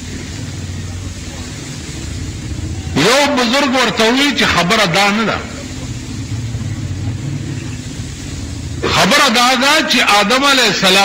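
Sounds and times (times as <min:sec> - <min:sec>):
faint hiss: 0:00.0 - 0:11.0
low background hum: 0:00.0 - 0:11.0.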